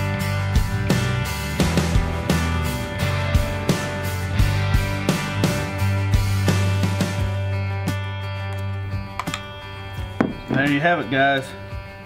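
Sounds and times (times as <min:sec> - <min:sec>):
strummed guitar over bass: 0:00.0 - 0:12.0
clicks: 0:08.5 - 0:09.5.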